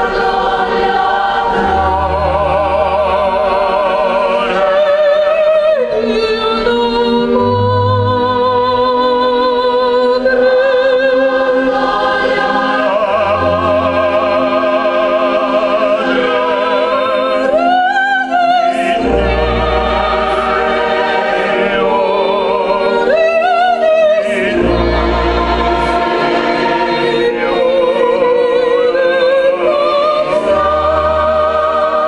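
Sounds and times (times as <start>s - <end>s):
chamber orchestra: 0.0s - 32.0s
choir singing: 0.0s - 32.0s.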